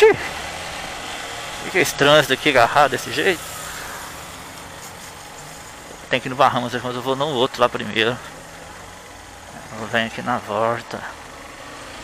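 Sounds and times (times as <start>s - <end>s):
motorcycle engine running low: 0.0s - 12.0s
wind and road noise: 0.0s - 12.0s.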